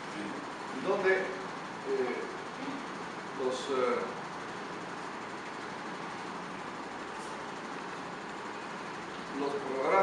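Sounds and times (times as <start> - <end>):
room noise hiss: 0.0 - 10.0.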